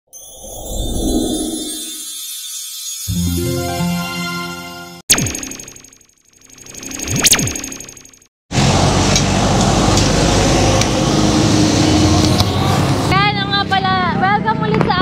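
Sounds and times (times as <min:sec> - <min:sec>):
street traffic noise: 0:08.5 - 0:15.0
woman talking: 0:13.1 - 0:15.0.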